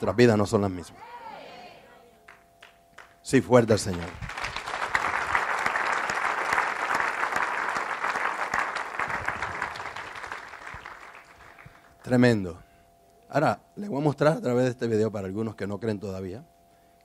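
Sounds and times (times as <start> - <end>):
congregation applauding: 3.8 - 12.1.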